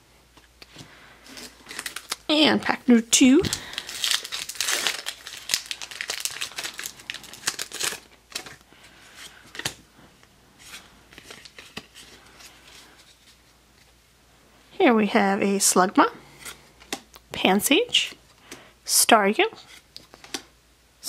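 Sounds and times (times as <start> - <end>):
foil wrapper tearing and crinkling: 1.3 - 2.3, 3.5 - 8.6
cards rustling and clicking: 3.4 - 8.6, 10.6 - 13.4.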